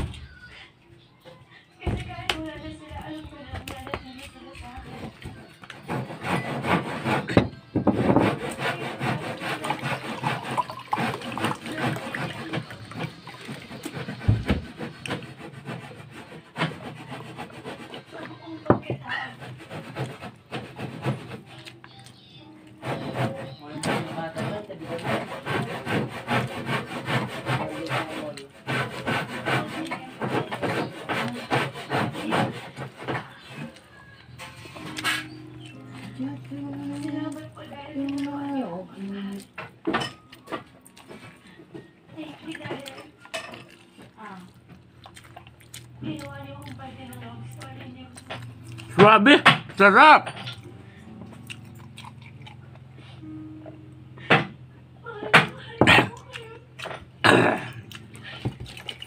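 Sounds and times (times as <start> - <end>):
fingers scraping ceramic plate: 4.6 - 21.7, 22.8 - 33.8
man chewing food: 35.6 - 49.0, 50.5 - 53.3, 56.1 - 59.0.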